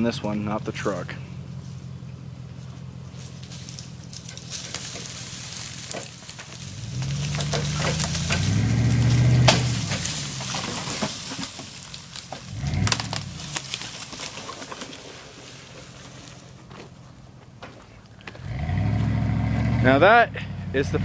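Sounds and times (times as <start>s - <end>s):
pickup engine revving: 0.0s - 17.2s, 18.3s - 21.0s
tree and brush crackling: 0.0s - 20.8s
sharp crack: 3.4s - 16.4s.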